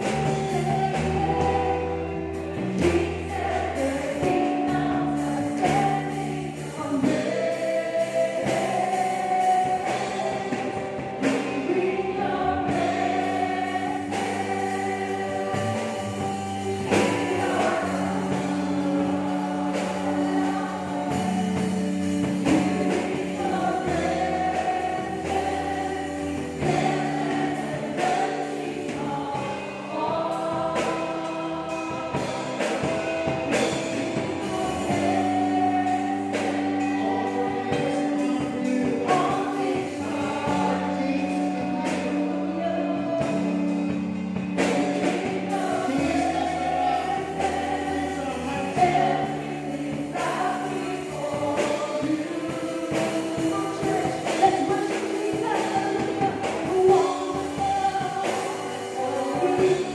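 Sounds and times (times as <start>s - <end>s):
instrumental backing music: 0.0s - 59.9s
woman singing into microphone: 0.0s - 59.9s.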